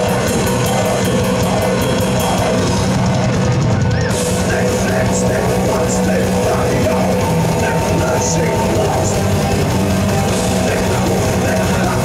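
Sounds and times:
heavy metal band playing live: 0.0s - 12.0s.

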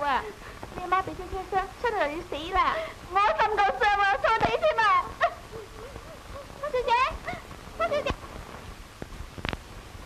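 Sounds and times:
film hiss: 0.0s - 10.0s.

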